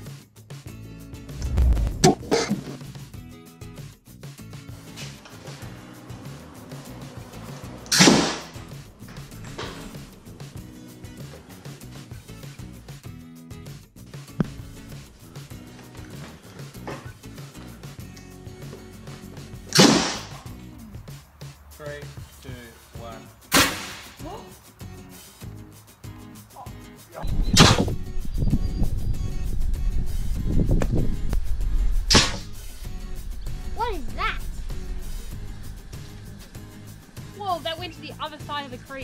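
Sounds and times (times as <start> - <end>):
background music: 0.0 - 39.0
air cannon blasts: 1.4 - 2.6, 7.9 - 8.7, 27.5 - 28.0, 31.6 - 37.2.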